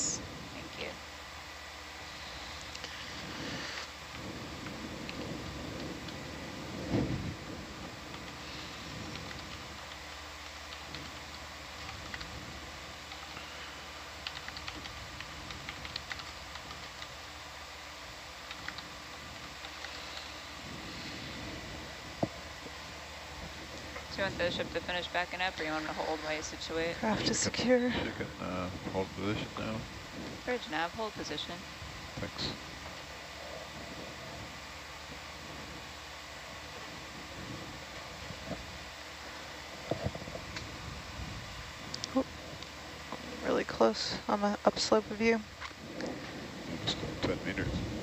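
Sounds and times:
electrical hum and hiss: 0:00.0 - 0:48.0
keyboard typing: 0:09.1 - 0:12.3, 0:14.2 - 0:17.1, 0:18.5 - 0:18.8.

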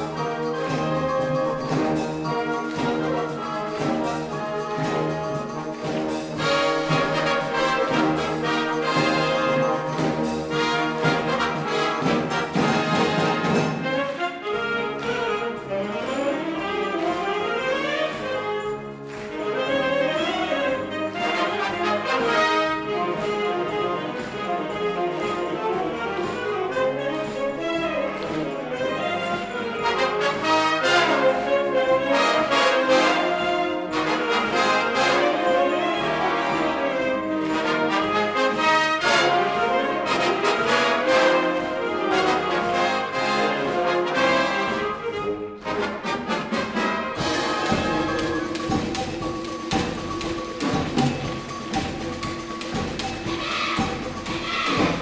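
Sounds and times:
wind band playing: 0:00.0 - 0:55.0.

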